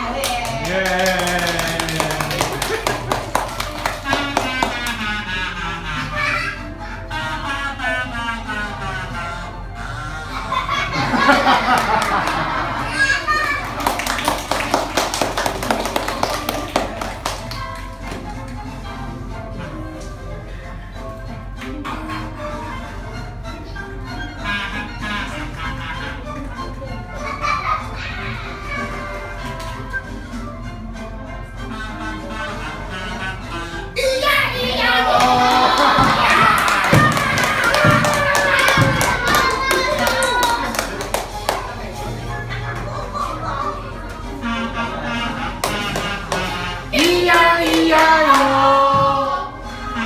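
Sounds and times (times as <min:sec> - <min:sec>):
music: 0:00.0 - 0:50.0
children clapping: 0:00.2 - 0:05.1, 0:11.5 - 0:18.2, 0:35.1 - 0:41.9, 0:45.6 - 0:48.6
kazoo playing a tune: 0:04.1 - 0:10.4
children shouting and cheering: 0:10.4 - 0:14.5, 0:34.0 - 0:41.3.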